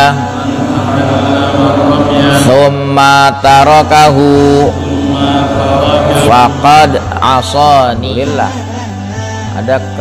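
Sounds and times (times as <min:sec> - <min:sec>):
steady low hum: 0:00.0 - 0:09.6
man chanting melodically: 0:00.0 - 0:10.0.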